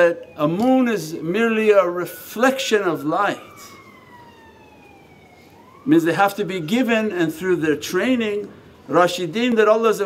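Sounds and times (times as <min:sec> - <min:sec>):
faint siren wail: 0:00.0 - 0:10.0.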